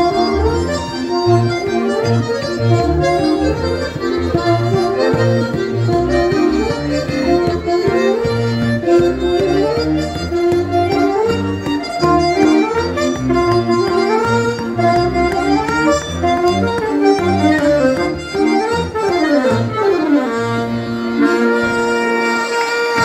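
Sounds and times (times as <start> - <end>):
button accordion: 0.0 - 23.0
saxophone: 0.0 - 23.0.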